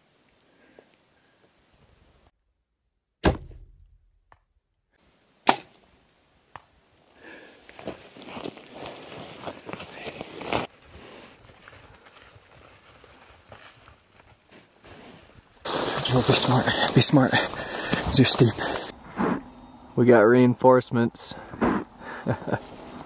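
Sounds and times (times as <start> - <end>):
sharp crack: 5.4 - 5.8
rustling in dry brush: 7.7 - 18.9, 22.3 - 23.0.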